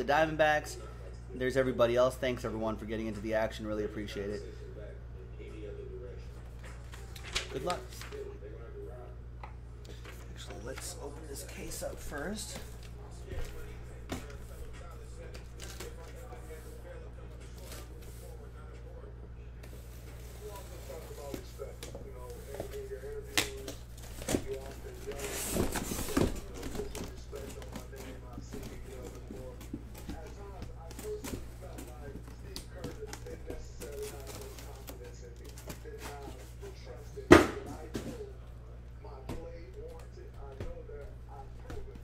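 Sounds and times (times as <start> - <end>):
cardboard scraping and rustling: 24.0 - 31.9.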